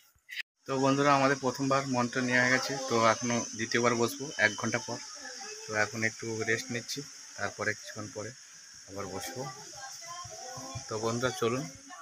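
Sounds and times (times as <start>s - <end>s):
high-pitched hiss: 0.0s - 12.0s
man talking: 0.7s - 5.0s, 5.7s - 9.5s, 10.9s - 11.7s.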